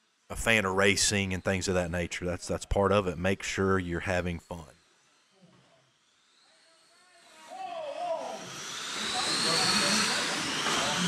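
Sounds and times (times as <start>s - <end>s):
electric motors whining: 4.4s - 11.0s
cars hissing on dirt track: 8.2s - 11.0s.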